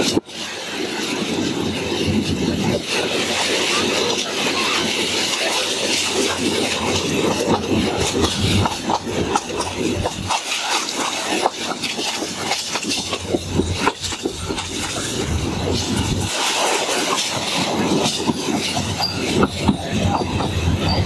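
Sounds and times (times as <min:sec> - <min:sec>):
train running noise: 0:00.0 - 0:21.0
wheels clicking on rails: 0:00.0 - 0:21.0.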